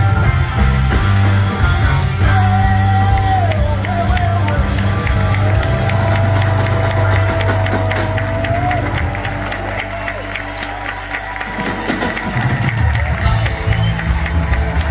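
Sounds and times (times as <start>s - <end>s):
crowd cheering and clapping: 0.0s - 14.9s
live rock band playing: 0.0s - 14.9s.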